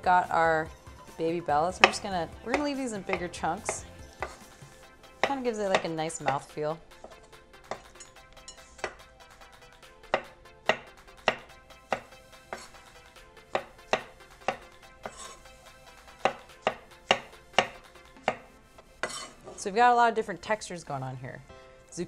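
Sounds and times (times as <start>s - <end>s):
knife chopping on wooden board: 1.8s - 4.6s, 5.2s - 8.0s, 10.1s - 12.9s, 13.5s - 15.3s, 16.1s - 19.2s.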